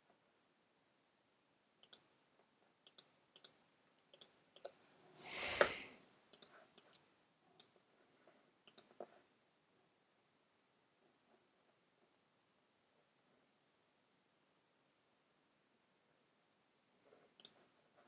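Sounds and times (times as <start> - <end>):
computer mouse clicking: 1.8 - 2.1, 2.8 - 4.8, 5.4 - 7.0, 8.6 - 9.1, 17.4 - 17.6
hiss: 5.2 - 5.9.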